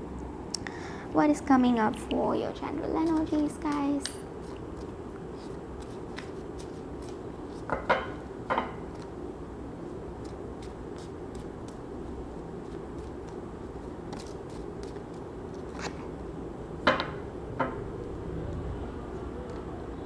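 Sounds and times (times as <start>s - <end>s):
cards being shuffled: 3.0s - 7.8s, 10.1s - 16.1s.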